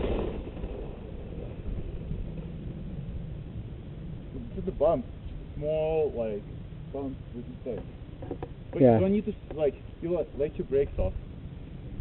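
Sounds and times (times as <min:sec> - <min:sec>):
bike tyres rumbling on dirt: 0:00.0 - 0:05.7
wind on microphone: 0:00.0 - 0:12.0.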